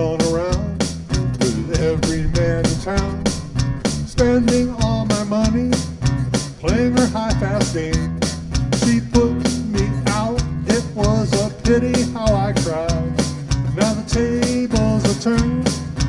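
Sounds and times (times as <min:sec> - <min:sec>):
acoustic guitar strumming: 0:00.0 - 0:16.0
electric bass: 0:00.0 - 0:16.0.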